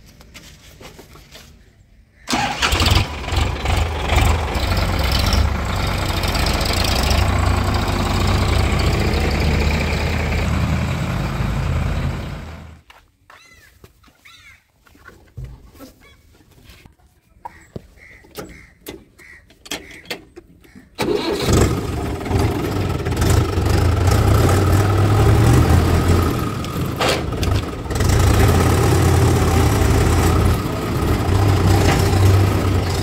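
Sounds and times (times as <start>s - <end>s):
diesel tractor engine running: 2.3s - 12.8s, 21.0s - 33.0s.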